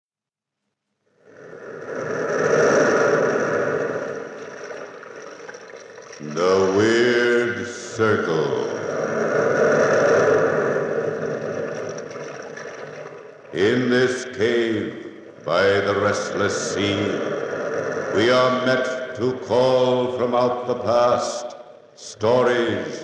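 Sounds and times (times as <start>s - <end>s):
sea waves rushing: 1.2s - 20.6s
wailing voice-like sound: 6.2s - 10.9s.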